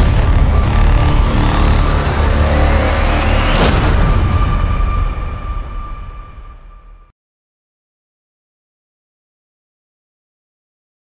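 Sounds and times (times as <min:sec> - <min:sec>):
rising synth sweep: 0:00.0 - 0:07.0
deep bass rumble: 0:00.0 - 0:07.1.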